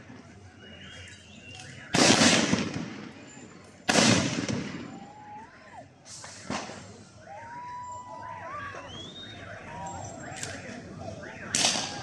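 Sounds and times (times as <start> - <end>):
gunshot cracks: 1.9 - 3.1, 3.9 - 4.8.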